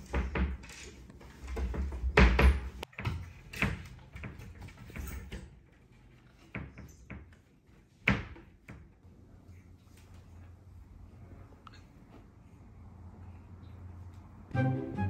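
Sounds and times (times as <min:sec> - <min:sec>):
wardrobe door knocking and rattling: 0:01.4 - 0:05.0.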